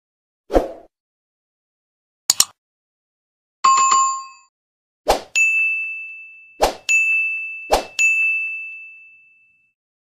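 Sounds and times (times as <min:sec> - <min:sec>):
short swish: 0:05.1 - 0:05.3
high ringing chime: 0:05.4 - 0:09.8.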